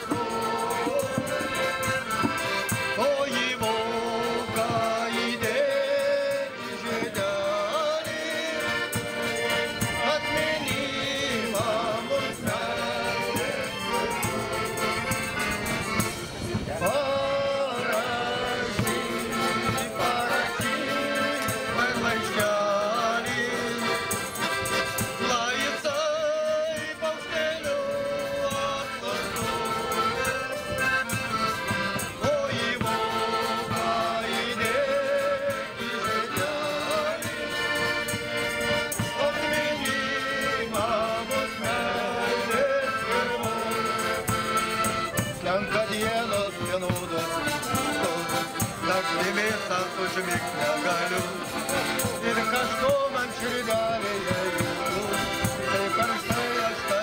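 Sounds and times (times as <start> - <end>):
men singing: 0.0 - 15.5, 16.7 - 57.0
piano accordions playing: 0.0 - 57.0.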